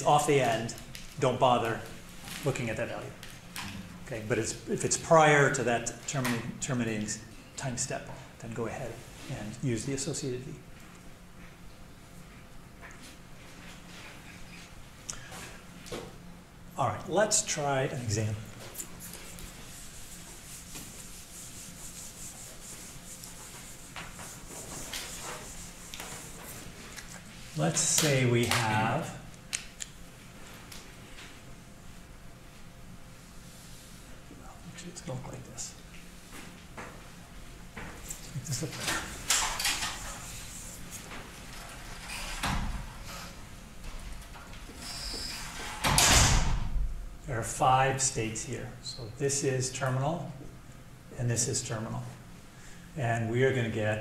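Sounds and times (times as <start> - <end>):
eraser rubbing on whiteboard: 18.9 - 26.7
marker squeaking on whiteboard: 44.8 - 45.6.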